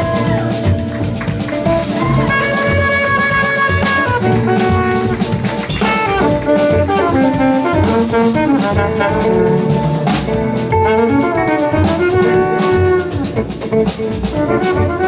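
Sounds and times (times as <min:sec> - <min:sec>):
band with drum kit: 0:00.0 - 0:15.0
trumpet jazz solo: 0:00.0 - 0:15.0.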